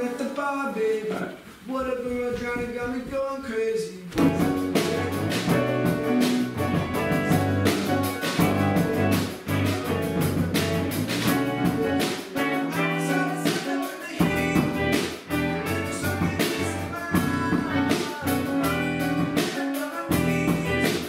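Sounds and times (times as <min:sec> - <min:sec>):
drum kit beat: 0:01.8 - 0:21.0
electric guitar: 0:04.2 - 0:21.0.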